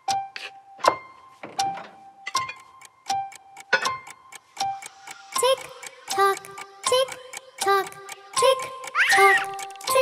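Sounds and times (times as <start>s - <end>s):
clock tick-tock: 0.0s - 1.0s, 1.6s - 10.0s
light music: 0.0s - 10.0s.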